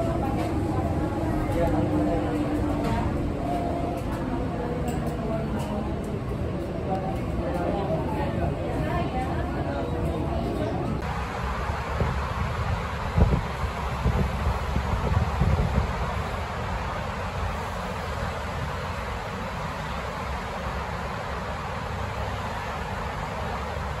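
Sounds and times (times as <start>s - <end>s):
monorail rumble and hiss: 0.0s - 24.0s.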